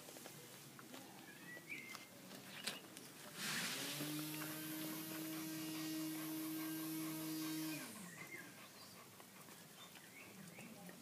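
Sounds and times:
small motor humming: 3.7 - 8.3.

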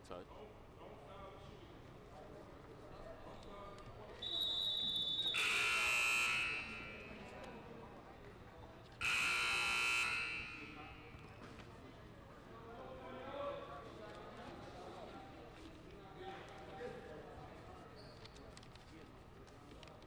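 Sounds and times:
scoreboard buzzer: 5.4 - 7.1, 9.0 - 11.1
high steady tone: 9.0 - 11.1.

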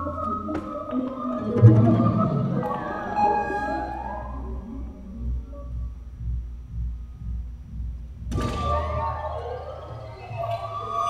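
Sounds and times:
bowed double bass: 0.0 - 11.0.

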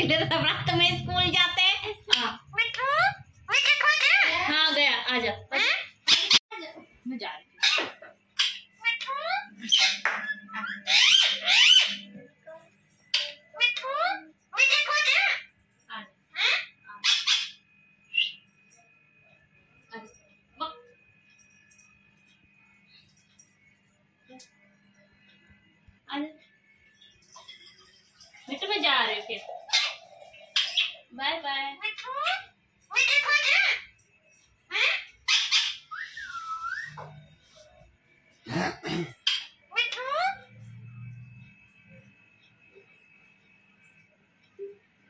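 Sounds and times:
parakeet calling: 1.4 - 4.8, 5.4 - 6.4, 7.6 - 12.2, 13.1 - 15.6, 16.3 - 18.5, 27.0 - 33.9, 34.6 - 37.3, 39.1 - 40.5
parakeet harsh squawks: 2.1 - 4.5, 5.5 - 6.4, 7.6 - 12.0, 13.2 - 15.5, 16.3 - 17.6, 29.4 - 31.0, 31.8 - 33.9, 34.7 - 37.0.

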